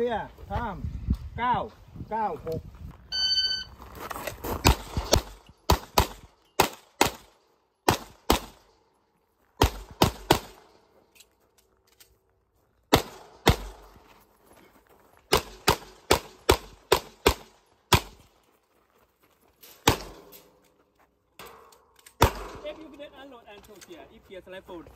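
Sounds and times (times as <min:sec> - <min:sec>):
pistol shots: 0:04.7 - 0:08.6, 0:09.6 - 0:10.7, 0:12.9 - 0:13.8, 0:15.3 - 0:18.2, 0:19.8 - 0:20.3, 0:22.2 - 0:22.8.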